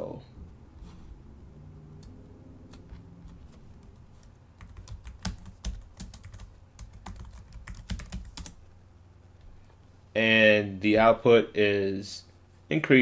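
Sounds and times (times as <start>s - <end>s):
computer keyboard typing: 2.7s - 8.6s.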